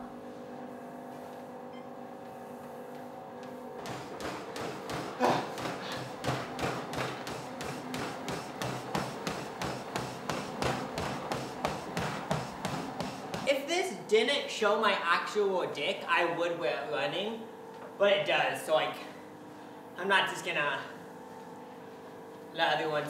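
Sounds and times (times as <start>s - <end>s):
treadmill humming: 0.0s - 23.0s
running footsteps on treadmill belt: 2.2s - 13.7s.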